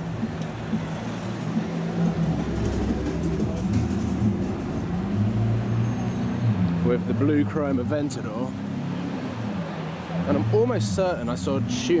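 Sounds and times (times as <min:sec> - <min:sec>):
traffic engines idling: 0:00.0 - 0:12.0.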